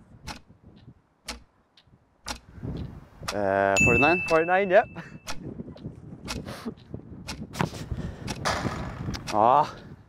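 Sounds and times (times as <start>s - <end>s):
clock ticking: 0.1s - 7.5s, 9.2s - 10.0s.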